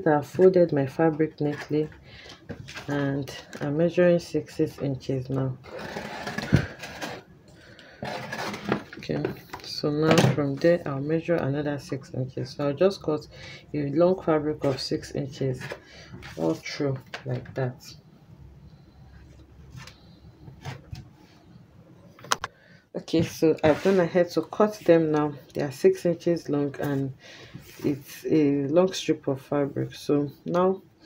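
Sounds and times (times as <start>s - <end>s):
fabric rustling and scraping: 8.0s - 9.2s, 23.4s - 25.0s.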